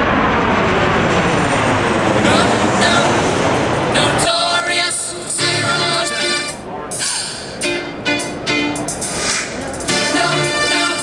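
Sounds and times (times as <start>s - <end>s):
jet airliner passing overhead: 0.0s - 11.0s.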